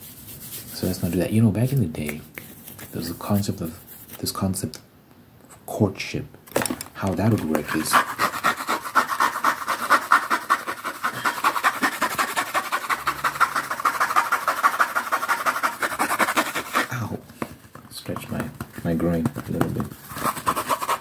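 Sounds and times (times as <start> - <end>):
lint brush scratching microphone: 7.4 - 16.9, 19.5 - 21.0.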